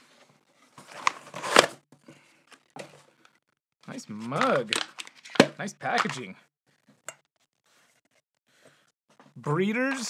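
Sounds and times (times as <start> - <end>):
cardboard box rustling and scraping: 0.0 - 1.8.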